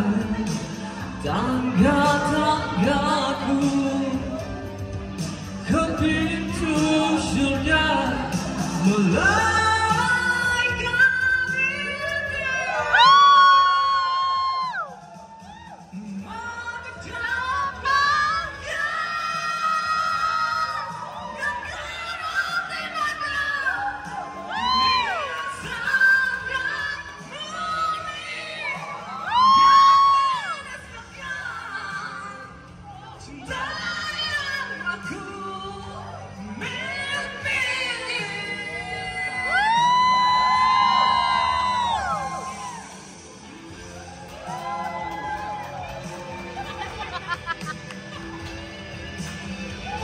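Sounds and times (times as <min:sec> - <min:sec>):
man singing into microphone: 0:00.0 - 0:04.6, 0:05.6 - 0:13.2
karaoke backing track: 0:00.0 - 0:50.0.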